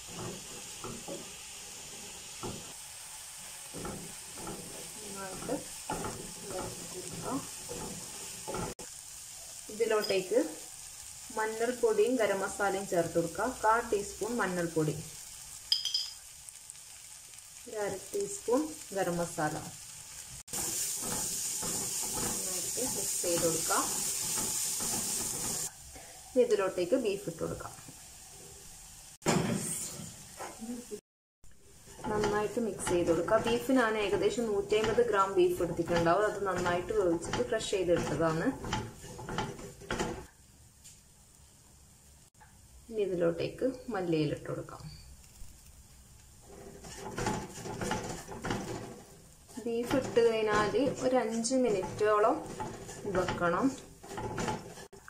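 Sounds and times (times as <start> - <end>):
beef stirred in frying pan: 0.0 - 29.2, 31.5 - 40.5, 45.0 - 55.0.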